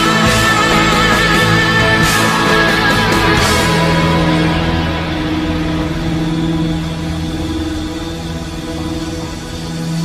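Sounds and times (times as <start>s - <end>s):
droning rock music: 0.0s - 10.0s.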